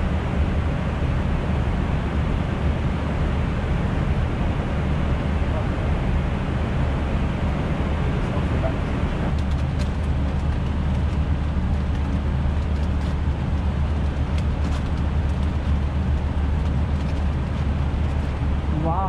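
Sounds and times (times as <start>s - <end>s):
airflow and air-conditioning rush: 0.0s - 19.0s
low hum: 0.0s - 19.0s.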